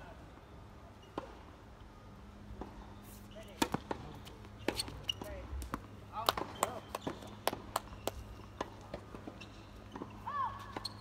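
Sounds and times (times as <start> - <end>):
tennis balls struck by rackets: 1.1 - 1.4, 2.5 - 11.0
tennis balls bouncing on court: 2.5 - 11.0.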